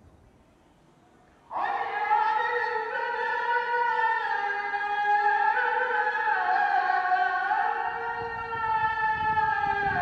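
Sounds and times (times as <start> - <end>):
man singing call to prayer: 1.5 - 10.0.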